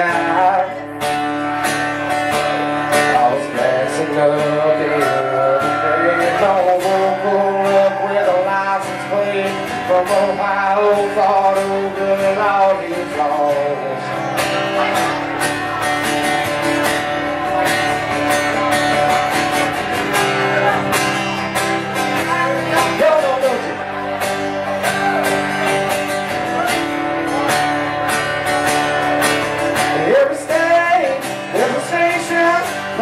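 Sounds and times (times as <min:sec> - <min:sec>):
person singing: 0:00.0 - 0:15.9
live country band music: 0:00.0 - 0:33.0
strummed acoustic guitar: 0:00.0 - 0:33.0.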